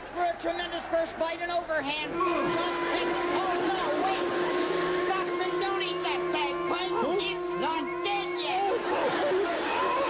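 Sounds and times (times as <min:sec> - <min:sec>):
bagpipes wailing: 0:02.3 - 0:10.0.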